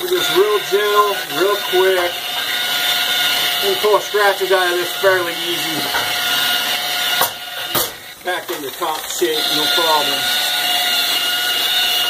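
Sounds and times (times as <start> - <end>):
rotary polisher motor whine: 0.0 - 7.8, 8.5 - 12.0.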